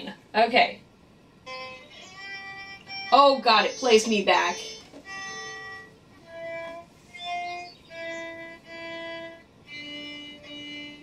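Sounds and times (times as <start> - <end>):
slow bowed violin notes: 1.4 - 11.0.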